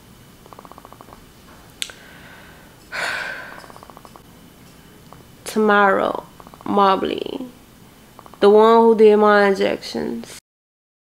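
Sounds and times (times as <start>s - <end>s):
creaky vocal rattle: 0.5s - 1.2s, 3.0s - 4.2s, 6.0s - 7.5s, 8.2s - 8.5s
mouth click: 1.8s - 2.0s.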